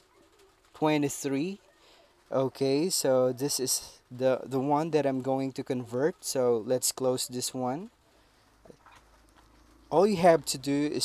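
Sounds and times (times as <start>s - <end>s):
man's voice: 2.3s - 7.9s, 9.9s - 11.0s.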